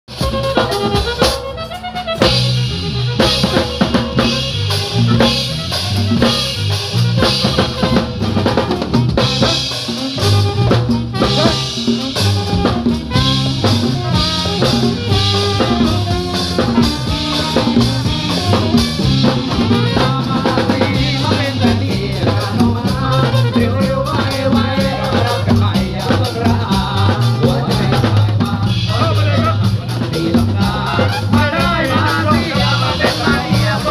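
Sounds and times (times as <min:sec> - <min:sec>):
bass line: 0:00.1 - 0:33.9
drum kit with cymbals: 0:00.1 - 0:33.9
hand drums: 0:00.1 - 0:33.9
live dance band: 0:00.1 - 0:33.9.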